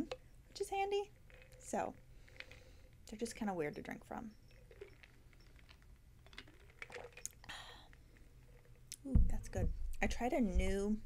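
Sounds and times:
small clicks: 0:04.4 - 0:09.0.

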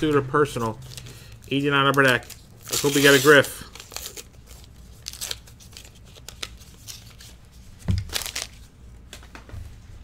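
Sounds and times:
foil wrapper crinkling: 0:00.8 - 0:08.7.

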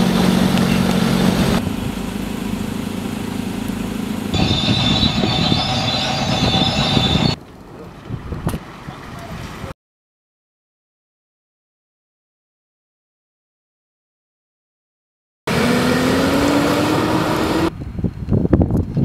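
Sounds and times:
bulldozer engine rumbling and whining: 0:00.0 - 0:09.7
steady engine hum: 0:00.0 - 0:09.7.

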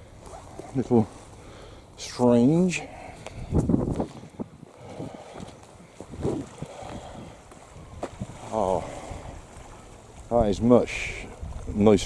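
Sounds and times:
wind on microphone: 0:03.2 - 0:12.0.

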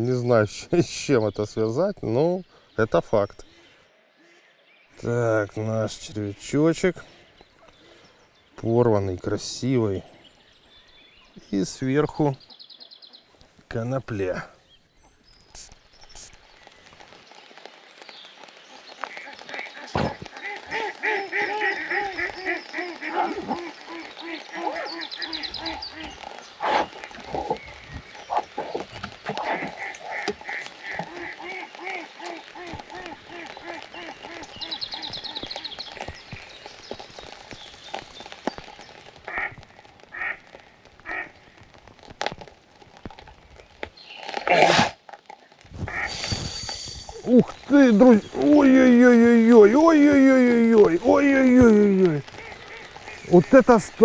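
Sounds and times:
rain pattering on pond: 0:00.0 - 0:03.6, 0:04.9 - 0:54.0
ducks quacking: 0:19.1 - 0:26.9, 0:29.4 - 0:35.7, 0:39.3 - 0:41.4, 0:45.8 - 0:54.0.

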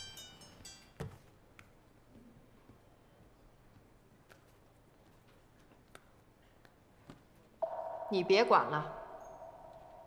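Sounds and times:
phone alert tone: 0:07.6 - 0:10.0.

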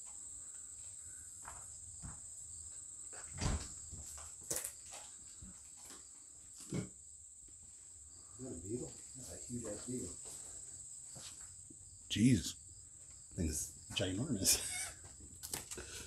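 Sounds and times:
crickets chirring: 0:00.0 - 0:16.0.

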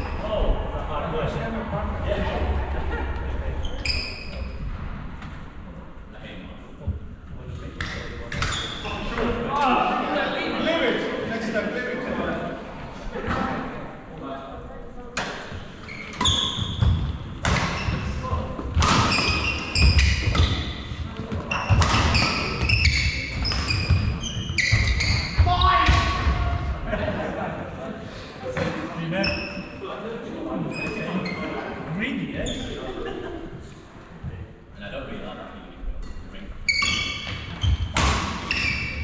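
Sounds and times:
shoes squeaking on wooden floor: 0:15.5 - 0:25.9, 0:36.6 - 0:39.0
rackets hitting shuttlecock: 0:16.8 - 0:18.0, 0:18.6 - 0:20.7.

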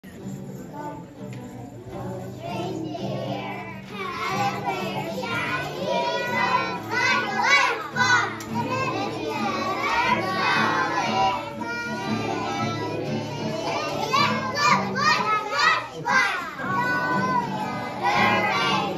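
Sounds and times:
musical accompaniment: 0:00.0 - 0:18.9
children singing: 0:00.1 - 0:18.9.

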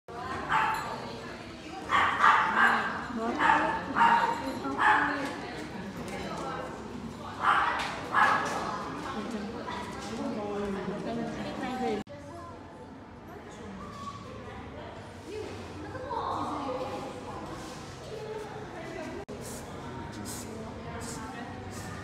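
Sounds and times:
dog barking high-pitched: 0:00.5 - 0:00.9, 0:01.9 - 0:05.1.

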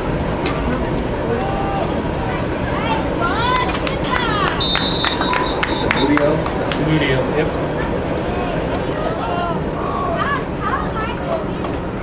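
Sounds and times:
referee's whistle blast: 0:04.6 - 0:06.2.

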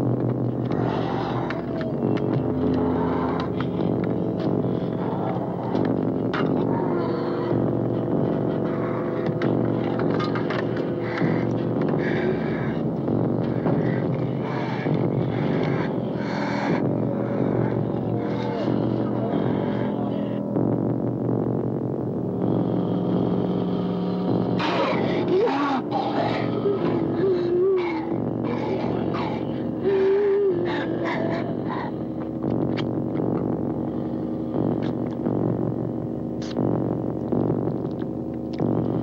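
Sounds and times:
dramatic film score: 0:00.0 - 0:39.0.

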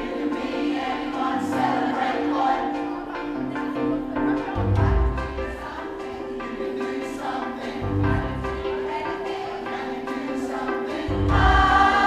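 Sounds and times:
choir singing sustained notes: 0:00.0 - 0:12.0.

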